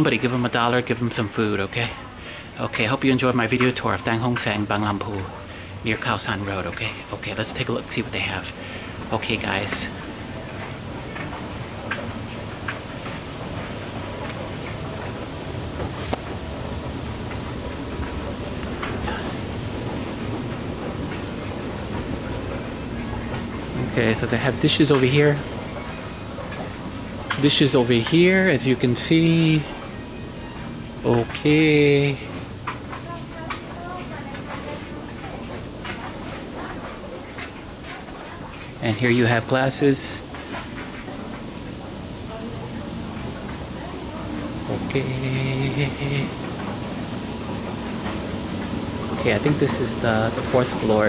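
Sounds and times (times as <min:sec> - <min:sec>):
shop floor background noise: 0:00.0 - 0:51.0.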